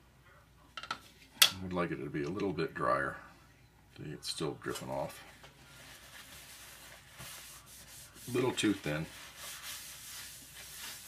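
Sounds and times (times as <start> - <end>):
paper towel scuffing plastic: 5.0 - 11.0.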